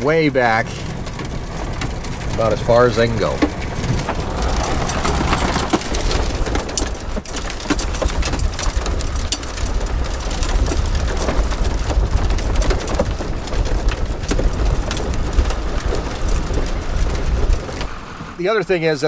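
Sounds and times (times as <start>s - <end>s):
wind rumble on microphone: 0.0s - 18.4s
tyres crackling over gravel: 0.0s - 19.0s.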